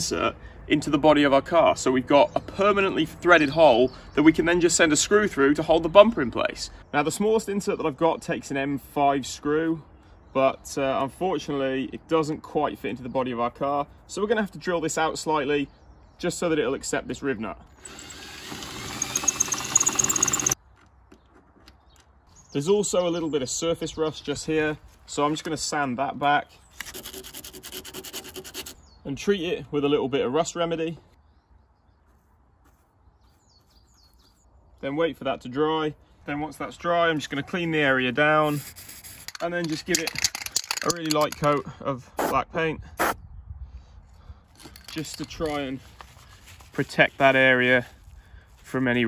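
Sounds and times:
cordless drill drilling metal: 17.7 - 20.6.

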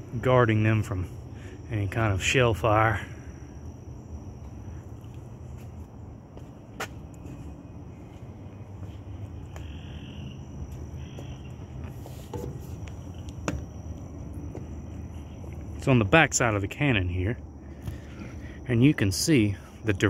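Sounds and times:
high insect drone: 0.0 - 20.0.

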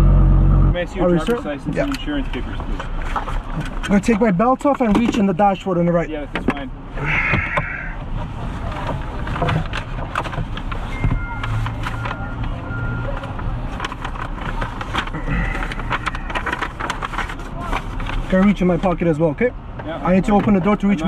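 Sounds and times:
city traffic noise: 0.0 - 21.0
papers rustling: 8.6 - 19.1.

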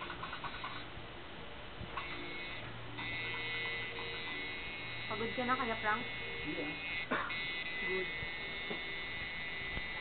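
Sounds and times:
tattoo machine buzzing: 0.0 - 0.8, 1.9 - 10.0.

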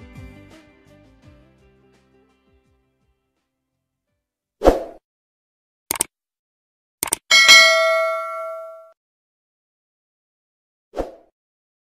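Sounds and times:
sound-effect clicks: 5.9 - 6.1, 7.0 - 7.3
bright bell ding: 7.3 - 8.9.

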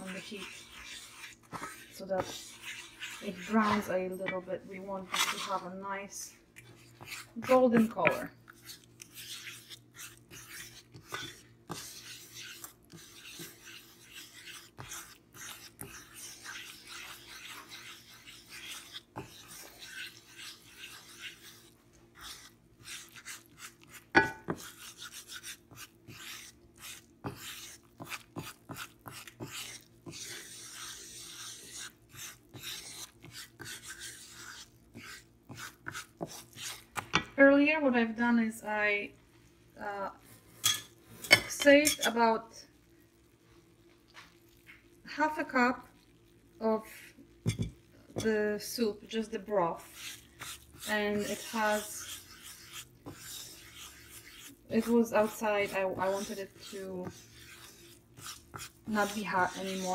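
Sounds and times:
wooden spoon scraping a pan: 0.0 - 37.3, 46.6 - 59.9
spoon knocking: 24.2 - 24.5.

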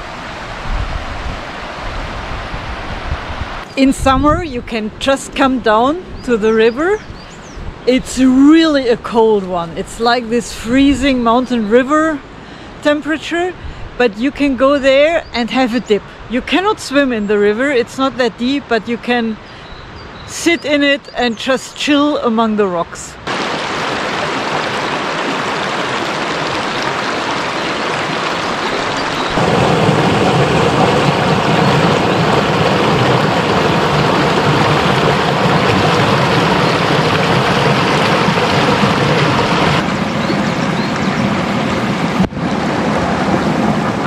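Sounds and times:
river rushing over stones: 23.2 - 44.0.

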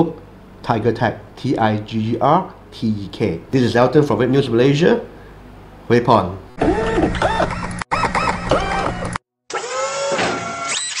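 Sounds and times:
synthesized whirring tones: 6.6 - 11.0.

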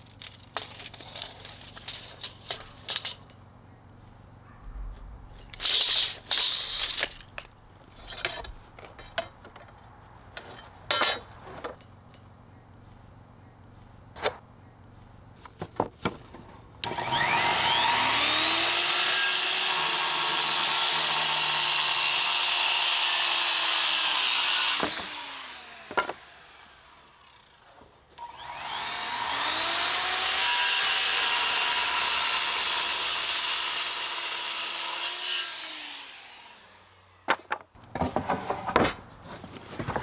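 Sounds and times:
circular saw cutting wood: 16.8 - 37.2
knocks of boards handled: 37.3 - 40.0.

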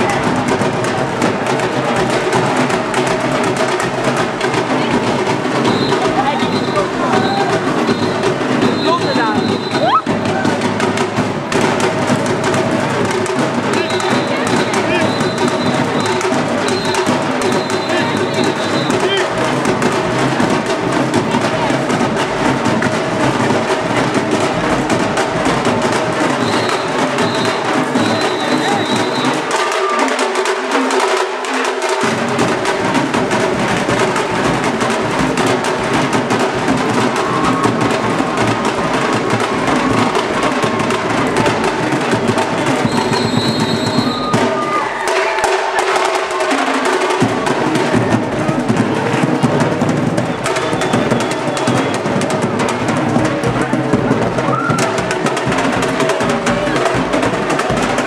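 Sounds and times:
bass drum: 0.0 - 30.4, 32.0 - 58.0
snare drums playing rhythm: 0.0 - 58.0.

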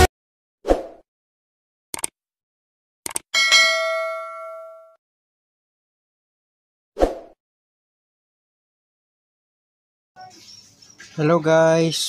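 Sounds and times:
short clicks: 1.9 - 2.2, 3.0 - 3.3
bright bell ding: 3.4 - 5.0.

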